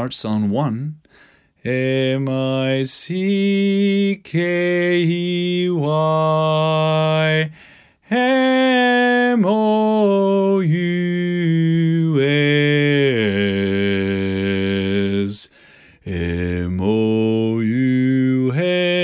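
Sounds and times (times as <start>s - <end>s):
man singing low notes: 1.6s - 19.0s.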